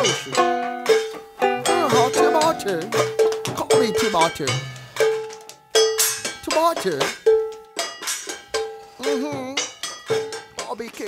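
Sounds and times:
metal bell ringing: 0.0 - 10.7.

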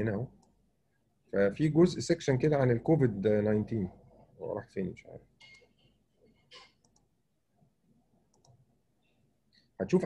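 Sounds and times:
man speaking: 1.3 - 5.3, 9.8 - 10.0
computer mouse clicks: 6.5 - 7.2, 8.3 - 8.6.

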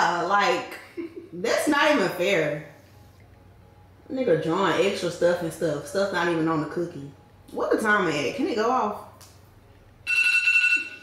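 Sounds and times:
smartphone timer alarm tone: 10.0 - 11.0.

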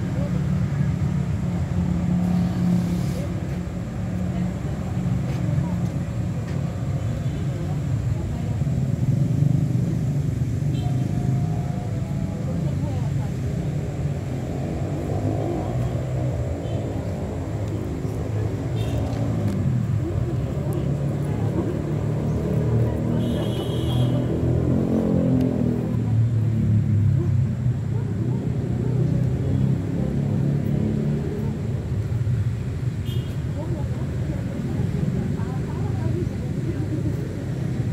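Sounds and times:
indistinct voices: 0.0 - 37.9.

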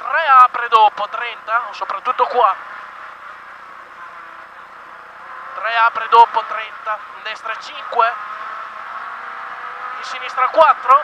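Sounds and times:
car engine pulling: 0.0 - 11.0
road and tyre noise: 0.0 - 11.0.

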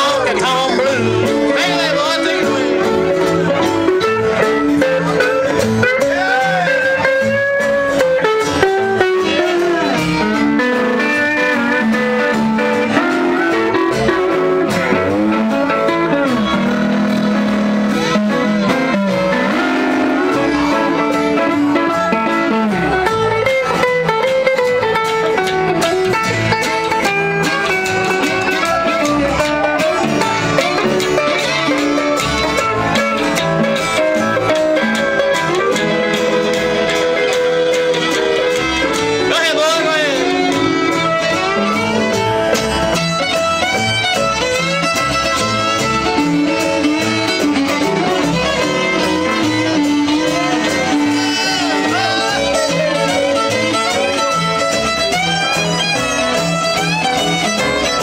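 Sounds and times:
fiddle: 0.0 - 58.0
pedal steel guitar: 0.0 - 58.0
strummed acoustic guitars: 0.0 - 58.0
upright bass: 0.0 - 58.0.

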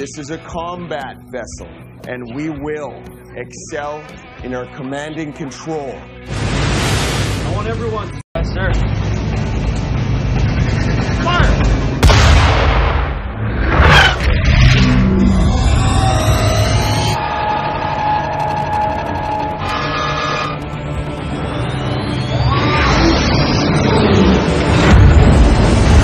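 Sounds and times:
movie soundtrack music: 0.0 - 26.0
loud boom: 6.3 - 7.7, 11.4 - 15.3, 24.7 - 26.0
rising whine: 13.5 - 26.0
droning tones: 14.8 - 26.0.

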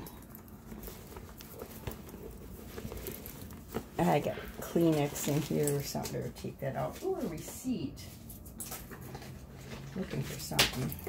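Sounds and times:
handbag rustling and clicking: 0.0 - 7.5, 8.1 - 11.0.

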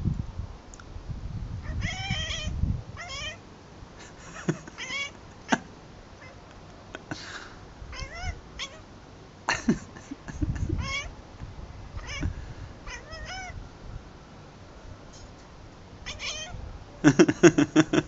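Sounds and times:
cat chattering: 1.7 - 3.4, 4.4 - 6.5, 7.9 - 8.8, 10.6 - 11.1, 12.0 - 12.3, 12.9 - 13.6, 16.1 - 16.6.

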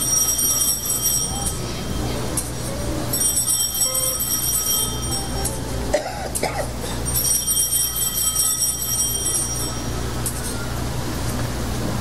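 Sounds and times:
altar bells ringing: 0.0 - 10.8.

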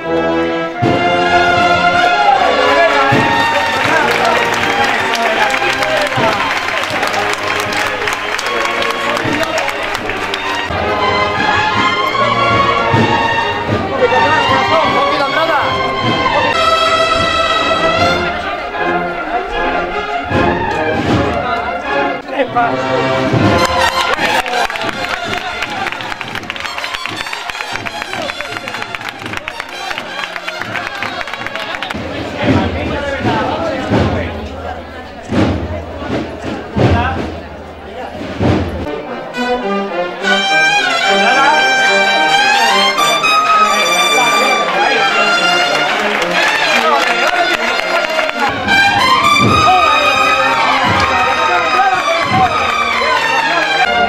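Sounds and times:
trumpets playing melody: 0.0 - 32.2, 38.4 - 54.0
brass band playing a march: 0.0 - 54.0.

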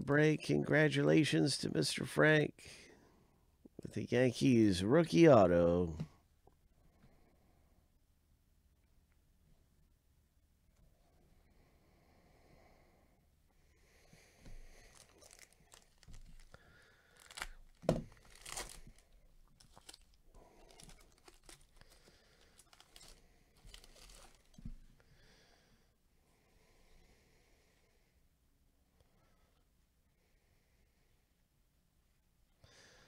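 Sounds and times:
foil wrapper tearing and crinkling: 14.8 - 24.6.

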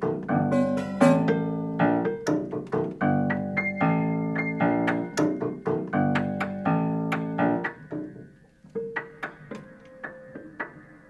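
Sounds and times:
prepared piano chords and notes: 0.0 - 11.0.

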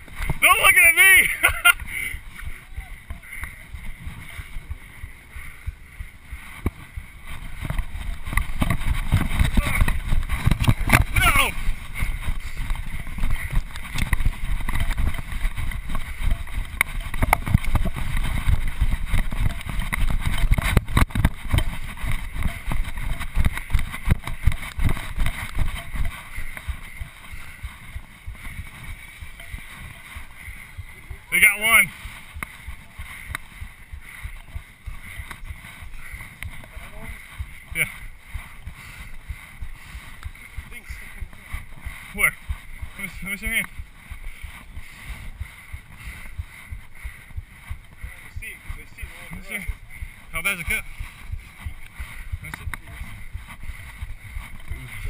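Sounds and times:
jolting thumps of running: 0.0 - 55.0
person calling out: 0.4 - 1.4, 11.1 - 11.6
wind rumble on microphone: 1.7 - 55.0.

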